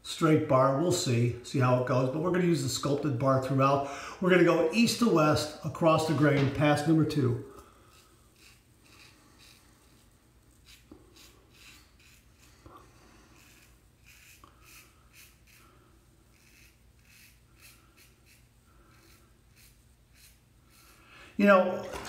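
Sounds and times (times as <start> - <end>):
razor scratching beard stubble: 7.8 - 21.1.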